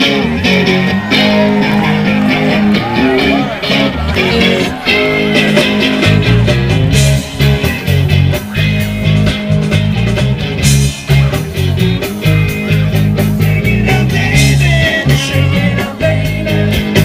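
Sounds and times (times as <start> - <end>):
drums: 0.0 - 17.0
electric guitar: 0.0 - 17.0
rock band through speakers: 0.0 - 17.0.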